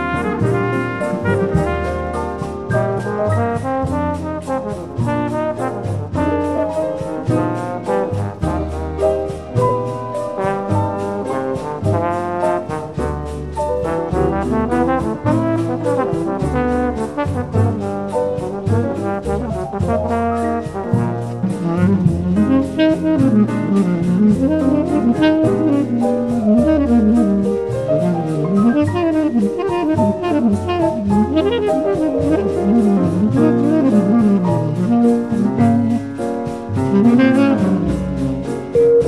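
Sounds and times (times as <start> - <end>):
brass band dance music: 0.0 - 39.0.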